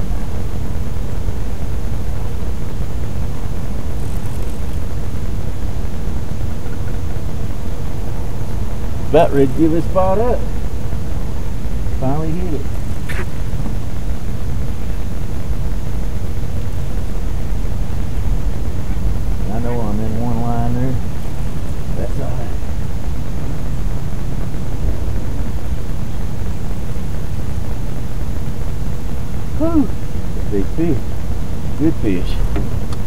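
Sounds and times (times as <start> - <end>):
steady low rumble: 0.0 - 33.0.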